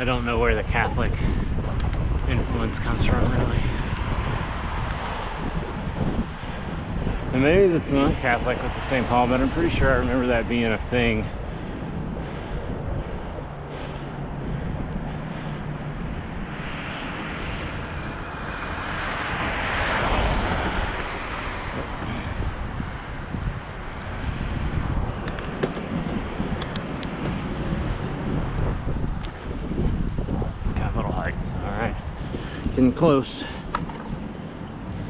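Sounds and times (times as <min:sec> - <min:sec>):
road and tyre noise: 0:00.0 - 0:35.0
wind on microphone: 0:00.0 - 0:35.0.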